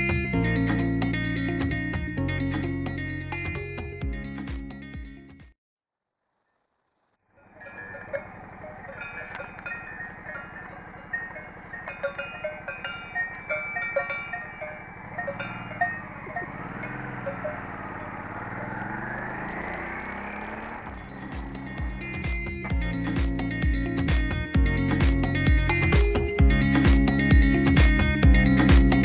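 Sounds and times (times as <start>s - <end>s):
motorcycle engine: 6.6s - 29.0s
cowbells clanging: 7.3s - 23.3s.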